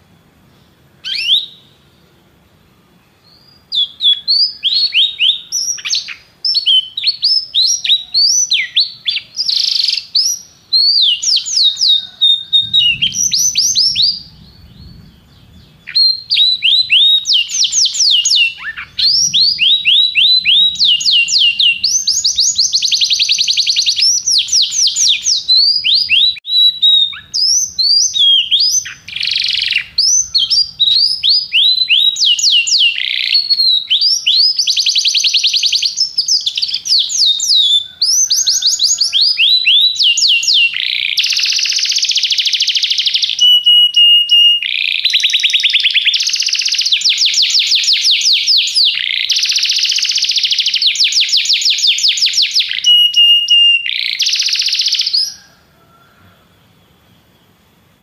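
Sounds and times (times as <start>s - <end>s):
canary singing trills: 0.0s - 55.6s.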